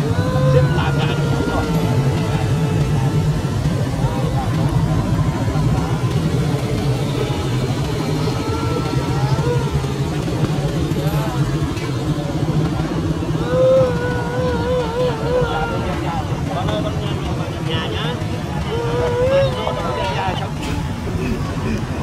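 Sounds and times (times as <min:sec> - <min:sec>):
vehicle engines rumbling: 0:00.0 - 0:22.0.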